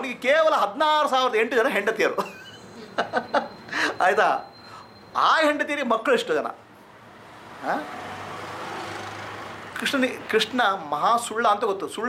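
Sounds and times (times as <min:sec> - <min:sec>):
vehicle passing by: 0:06.9 - 0:10.9.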